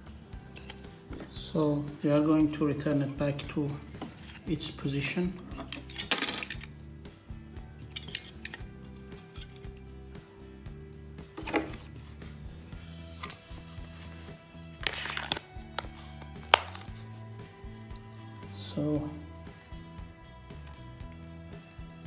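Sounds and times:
background music with held notes: 0:00.0 - 0:22.0
plastic clicks and rustles: 0:14.8 - 0:16.9.

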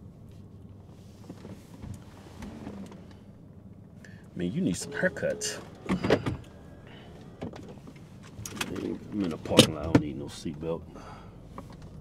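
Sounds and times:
low steady car cabin hum: 0:00.0 - 0:12.0
faint clicks and rustles: 0:00.2 - 0:04.0.

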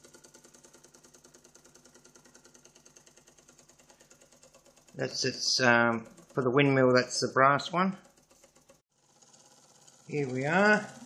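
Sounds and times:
toy steam engines ticking: 0:00.0 - 0:11.0.

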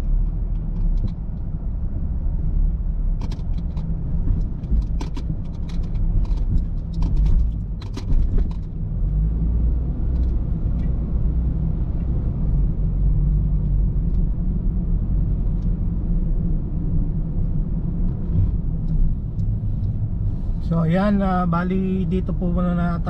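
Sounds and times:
car engine and tyres rumbling: 0:00.0 - 0:23.0.

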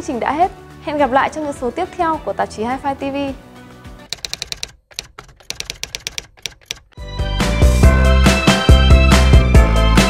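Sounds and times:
keyboard typing clicks: 0:04.1 - 0:07.0.

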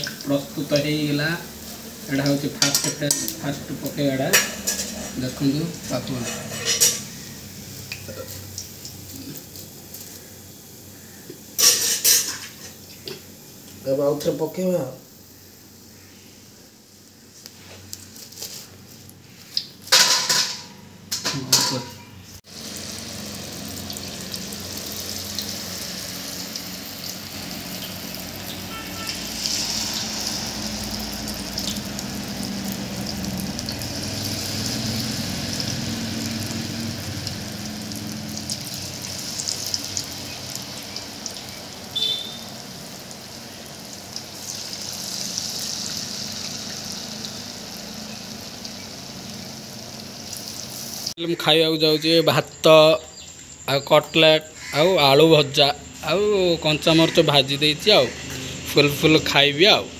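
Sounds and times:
deep-frying sizzle and bubbling: 0:00.0 - 0:59.9.

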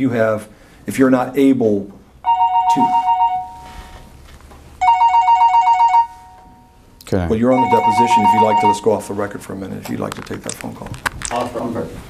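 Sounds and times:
two-tone phone ringtone: 0:02.2 - 0:03.8, 0:04.8 - 0:06.8, 0:07.4 - 0:08.9.

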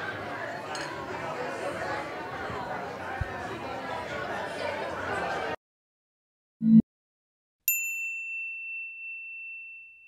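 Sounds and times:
high bell-like ding: 0:07.7 - 0:10.0.

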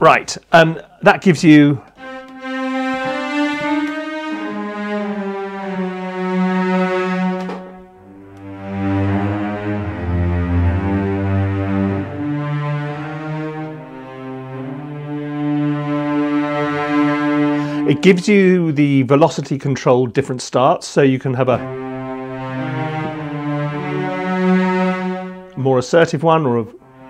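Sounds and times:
sustained cello notes: 0:01.5 - 0:19.3, 0:21.3 - 0:27.0.

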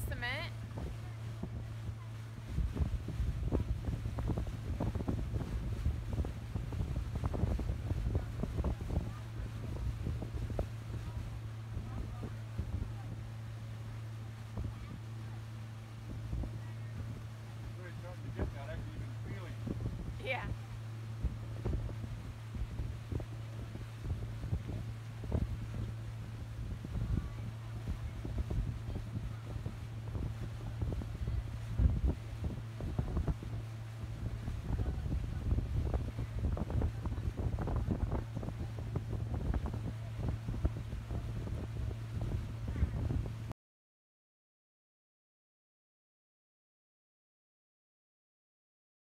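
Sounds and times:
motorboat engine humming: 0:00.0 - 0:43.5
wind buffeting microphone: 0:00.0 - 0:43.5.

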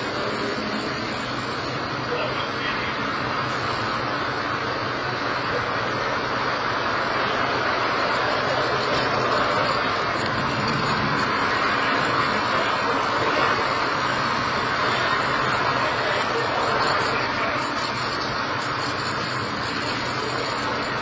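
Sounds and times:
distant rocket roar: 0:04.3 - 0:21.0.

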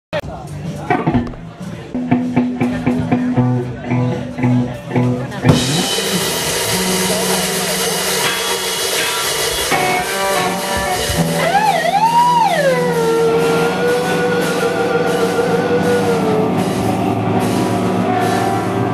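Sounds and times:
drums and bass intro: 0:00.1 - 0:18.9
guitar note bending: 0:00.8 - 0:18.9
loud rock guitars: 0:00.8 - 0:18.9.

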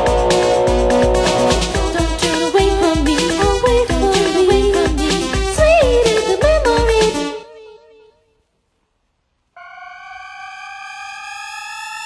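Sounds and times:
rising synthesizer tone: 0:00.0 - 0:02.0, 0:09.6 - 0:12.0.

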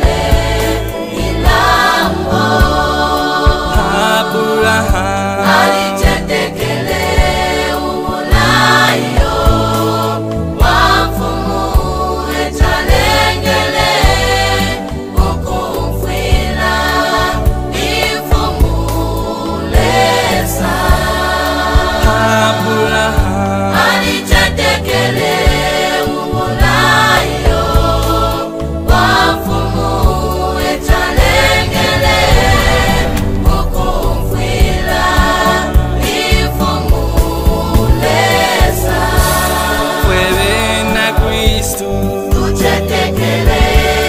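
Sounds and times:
gospel choir singing harmony: 0:00.0 - 0:44.0.

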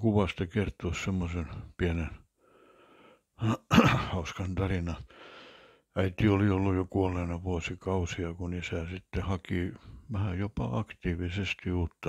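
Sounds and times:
man talking: 0:00.0 - 0:02.2, 0:03.4 - 0:05.1, 0:06.0 - 0:12.0
short breath drawn in: 0:02.4 - 0:03.3, 0:05.1 - 0:05.9.

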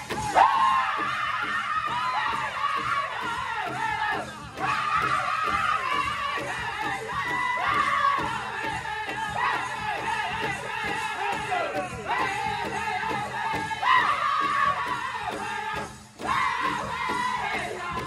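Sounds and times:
group singing in unison: 0:00.0 - 0:18.0
large drum beats: 0:00.0 - 0:18.0.

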